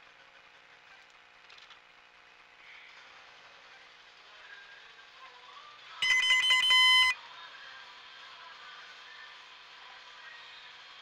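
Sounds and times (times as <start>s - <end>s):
low steady hum: 5.9s - 7.2s
electronic alarm tone: 6.0s - 7.2s.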